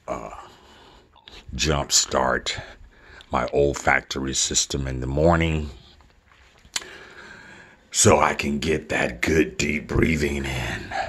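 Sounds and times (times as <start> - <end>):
mouth click: 6.7 - 7.0
man breathing in: 6.8 - 7.9.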